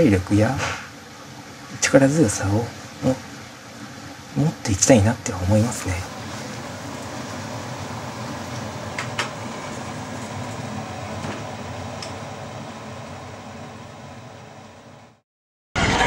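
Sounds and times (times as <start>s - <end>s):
ambient hum and hiss: 0.0s - 15.2s.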